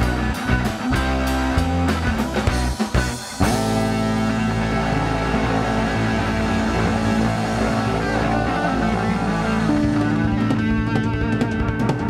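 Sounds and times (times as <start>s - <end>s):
electric blues band playing: 0.0s - 12.0s.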